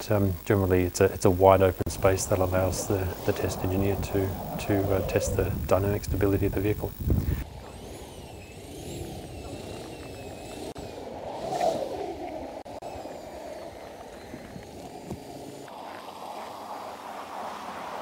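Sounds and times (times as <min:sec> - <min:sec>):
pickup engine revving: 0:01.8 - 0:07.4
tyre noise: 0:01.8 - 0:07.4.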